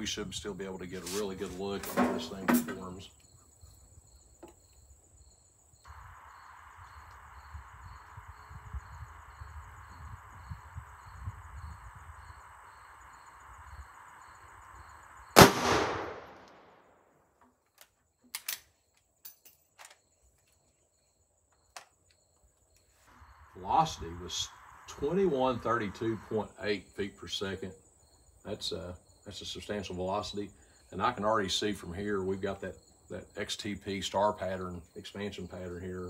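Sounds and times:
rifle shot: 15.4 - 17.0.

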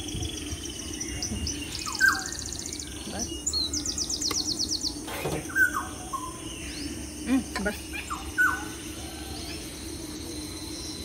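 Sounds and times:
steady low hum: 0.0 - 11.0
birds whistling descending calls: 0.9 - 6.9.

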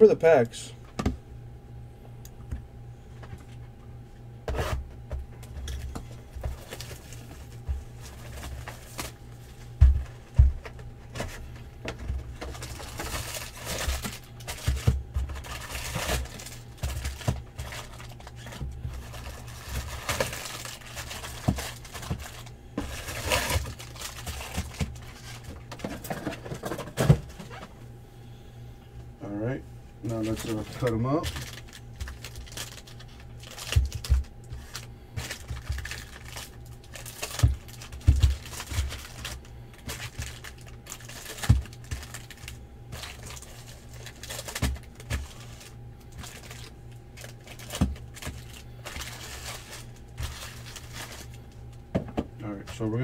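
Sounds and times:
wrapped packs crinkling: 5.6 - 9.2, 12.0 - 26.7, 30.1 - 51.8.

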